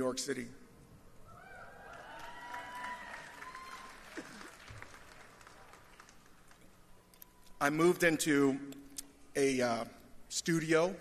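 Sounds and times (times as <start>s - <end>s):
whoops: 1.2s - 4.7s
audience applauding: 1.8s - 6.7s.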